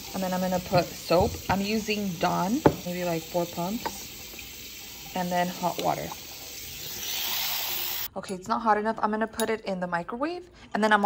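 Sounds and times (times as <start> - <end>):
water pouring into a bowl: 0.0 - 8.1.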